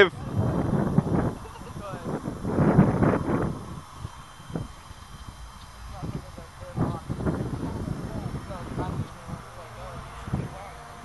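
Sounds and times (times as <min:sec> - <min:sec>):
low rumble: 0:00.0 - 0:10.9.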